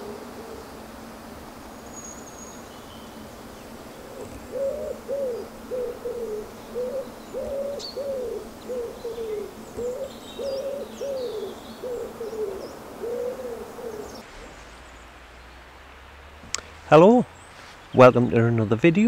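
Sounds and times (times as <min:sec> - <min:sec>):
pigeon cooing: 0:00.0 - 0:00.8, 0:04.0 - 0:14.2
faint high bird chirps: 0:04.2 - 0:14.2.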